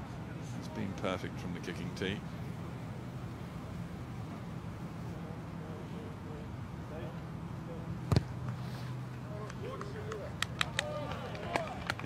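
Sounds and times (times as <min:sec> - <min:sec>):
distant voices: 0:00.0 - 0:12.0
boot kicking ball thud: 0:08.1 - 0:08.4.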